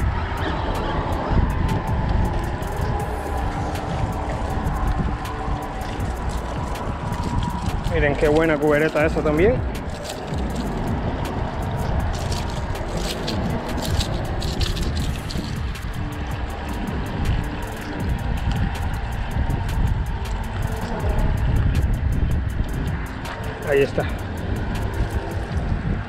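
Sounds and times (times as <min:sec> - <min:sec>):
low rumble of road traffic: 0:00.0 - 0:26.0
wind on the microphone: 0:00.0 - 0:26.0.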